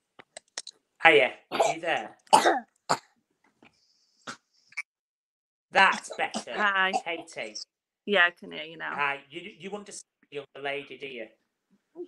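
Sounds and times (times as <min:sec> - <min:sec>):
man coughing: 0:01.5 - 0:03.1, 0:05.9 - 0:07.4.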